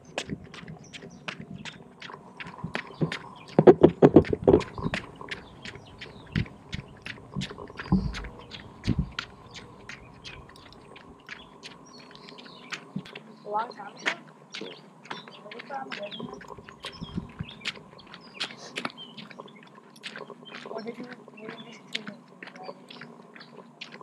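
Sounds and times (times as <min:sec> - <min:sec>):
rapid repeated chirps: 0:00.0 - 0:24.0.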